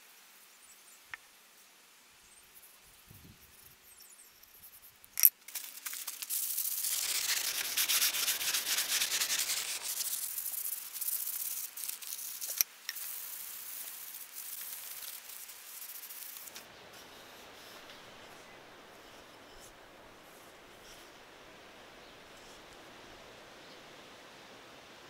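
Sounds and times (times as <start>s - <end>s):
sandpaper rubbing wood: 5.8s - 21.1s.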